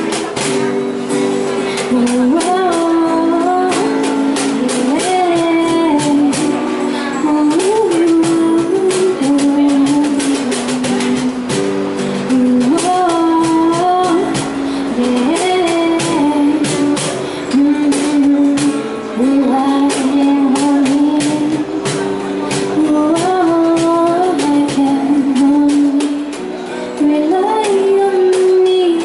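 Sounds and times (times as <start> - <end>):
cajon beat: 0.0 - 29.0
strummed acoustic guitar: 0.0 - 29.0
woman singing: 1.5 - 29.0.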